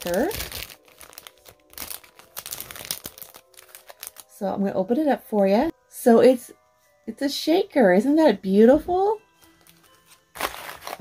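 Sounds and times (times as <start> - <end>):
cellophane sleeve crinkling: 0.0 - 4.4, 9.6 - 11.0.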